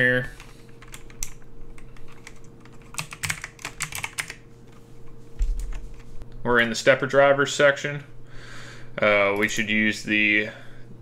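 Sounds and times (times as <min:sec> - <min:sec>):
faint steady hum: 0:00.0 - 0:11.0
keyboard typing clicks: 0:00.8 - 0:04.4.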